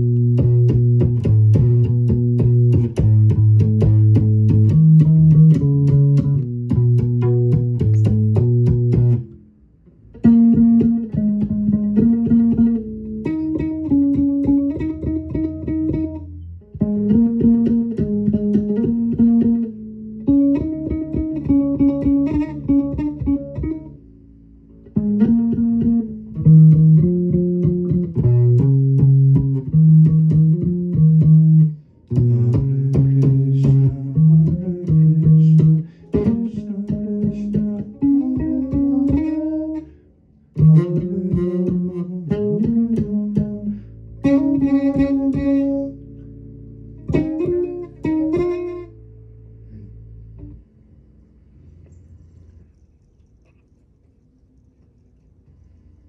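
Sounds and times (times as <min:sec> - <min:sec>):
electric bass guitar plucked notes: 0:00.0 - 0:52.1.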